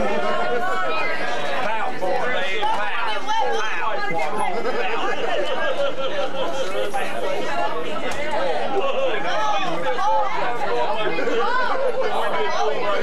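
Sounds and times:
overlapping conversation: 0.0 - 13.0.

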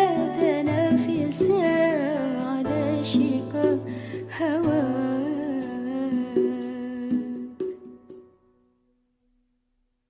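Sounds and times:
devotional song: 0.0 - 8.3.

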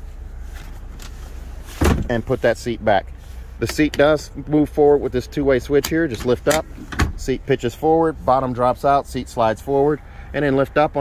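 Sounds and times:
low steady rumble: 0.0 - 11.0
seat back latching thump: 1.7 - 2.1, 6.7 - 7.2.

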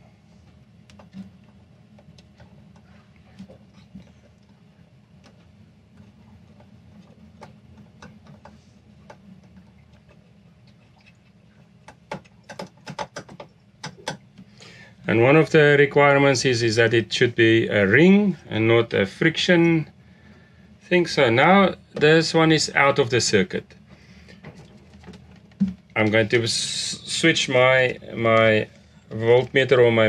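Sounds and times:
low steady hum: 0.0 - 30.0.

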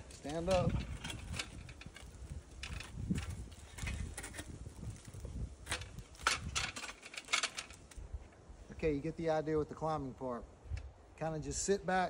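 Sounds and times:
metal frame scraping tree bark: 0.0 - 8.0.

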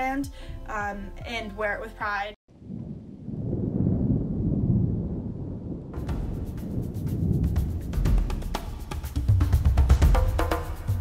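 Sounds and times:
deep low rumble: 2.5 - 8.5
drum-heavy music: 6.0 - 11.0.

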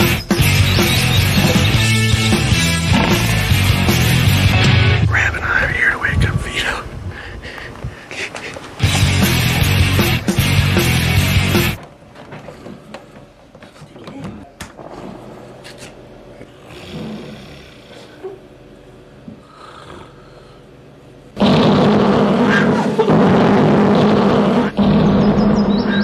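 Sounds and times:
faint breathing: 5.1 - 8.6, 16.4 - 20.8
loud harsh roar through microphone: 21.4 - 26.0.

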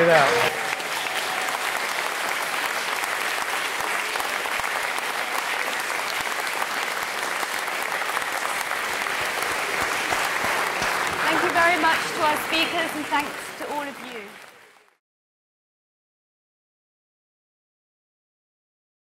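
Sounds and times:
large audience applauding: 0.0 - 15.0.

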